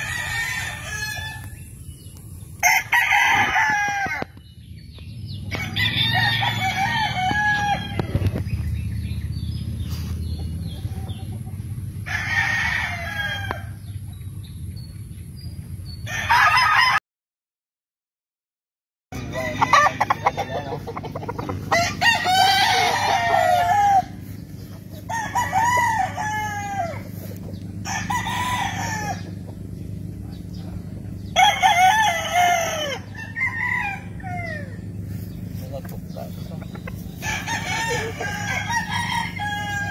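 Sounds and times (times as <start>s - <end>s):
roosters crowing: 0.0s - 17.0s, 19.2s - 39.9s.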